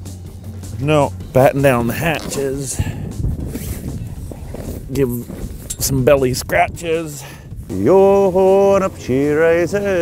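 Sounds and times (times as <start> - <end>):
heavy fabric cover rustling: 1.4 - 6.4.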